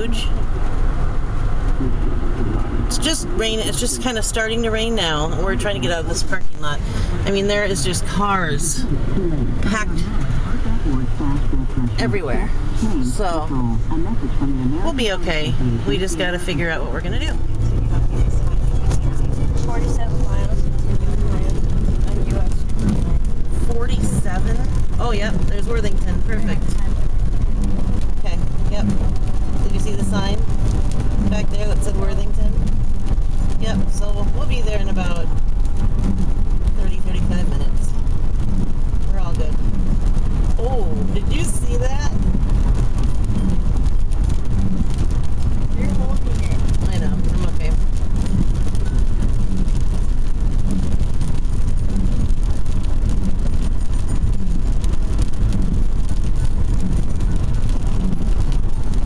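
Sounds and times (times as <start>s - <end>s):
car engine and tyres rumbling: 0.0s - 59.0s
faint voices talking: 2.9s - 32.7s.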